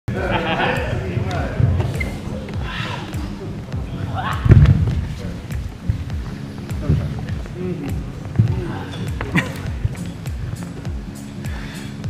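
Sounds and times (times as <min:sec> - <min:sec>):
low thumps: 0:00.1 - 0:11.2
feet moving on hall floor: 0:00.3 - 0:11.8
heavy thud of body on floor: 0:04.4 - 0:07.4.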